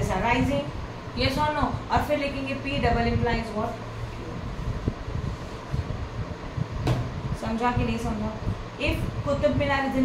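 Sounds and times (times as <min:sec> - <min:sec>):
fan running: 0:00.0 - 0:10.0.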